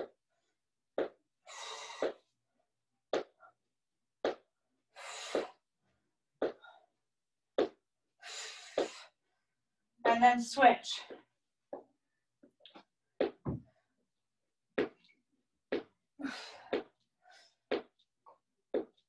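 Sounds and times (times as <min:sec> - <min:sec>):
short sharp exercise thuds: 0:04.2 - 0:04.4, 0:06.4 - 0:06.8, 0:07.6 - 0:09.0, 0:13.2 - 0:13.7, 0:14.8 - 0:15.1.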